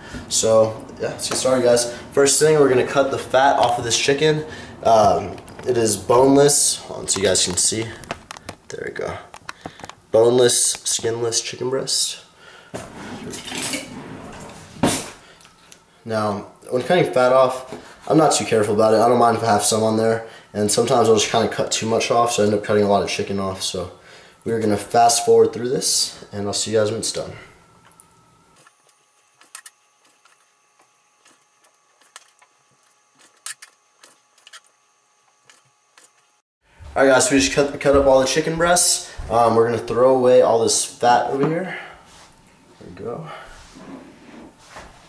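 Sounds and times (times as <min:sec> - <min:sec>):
faint steady hum: 0:00.0 - 0:45.0.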